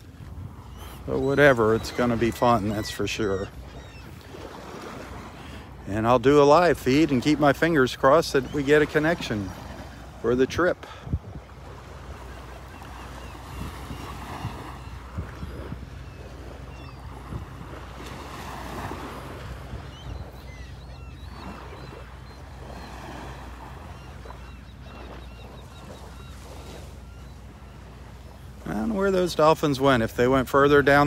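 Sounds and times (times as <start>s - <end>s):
wind rumble on microphone: 0.0s - 1.4s, 9.5s - 12.3s, 13.0s - 21.6s
small waves lapping on beach: 0.0s - 31.0s.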